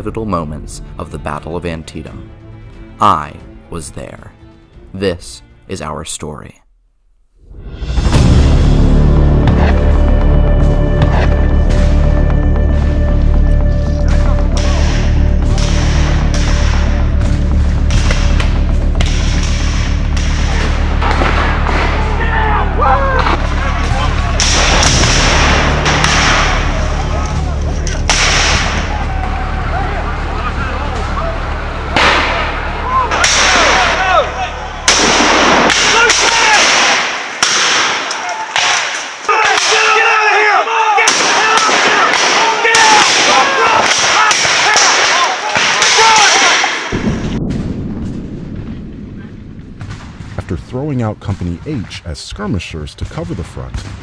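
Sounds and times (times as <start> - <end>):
low music drone: 7.6 - 35.8
men shouting: 21.6 - 34.9, 35.6 - 37.1, 38.1 - 46.9
musket shots: 23.2 - 29.0, 32.0 - 34.1, 34.8 - 40.0, 41.0 - 50.6.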